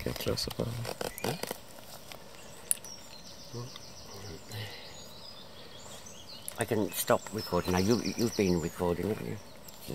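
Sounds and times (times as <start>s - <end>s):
faint outdoor background noise: 0.0s - 9.9s.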